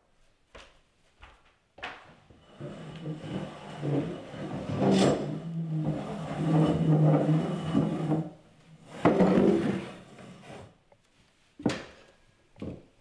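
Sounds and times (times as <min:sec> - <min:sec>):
chair scraping on wooden floor: 0:02.4 - 0:10.8.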